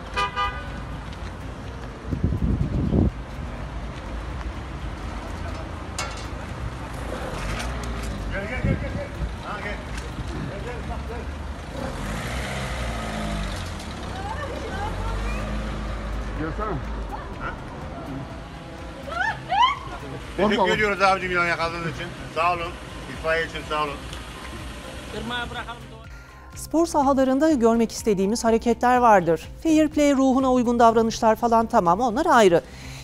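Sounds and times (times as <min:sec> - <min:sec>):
street traffic rumble: 0:00.0 - 0:33.0
people talking indistinctly: 0:08.3 - 0:11.5, 0:14.0 - 0:32.7.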